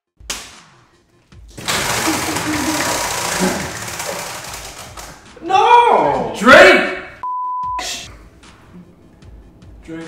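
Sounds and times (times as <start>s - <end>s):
prize wheel clicking: 1.6s - 5.2s.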